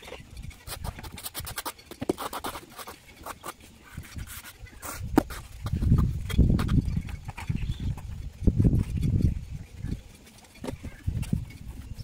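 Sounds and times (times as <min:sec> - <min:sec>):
trowel scraping mortar: 0:00.0 - 0:12.0.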